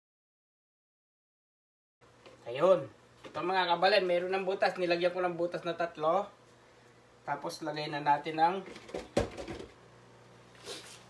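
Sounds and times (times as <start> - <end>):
plastic pot knocking on metal sink: 8.9 - 9.7.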